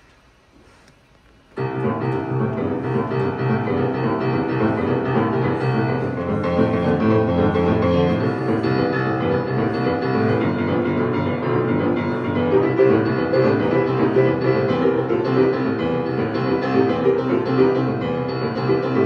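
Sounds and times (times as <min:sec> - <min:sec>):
boogie-woogie piano: 0:01.6 - 0:19.0.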